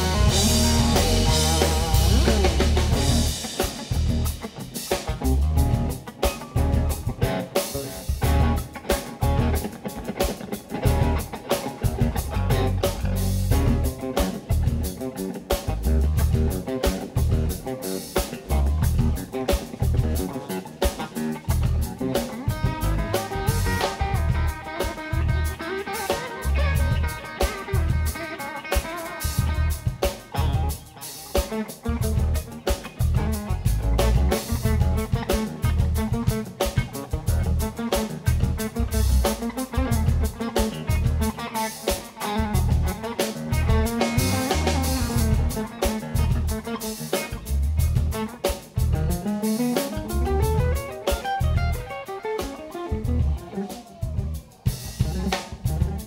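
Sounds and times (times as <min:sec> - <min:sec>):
bass: 0:00.0 - 0:56.0
drum kit: 0:00.0 - 0:56.0
electric guitar soloing: 0:00.0 - 0:56.0.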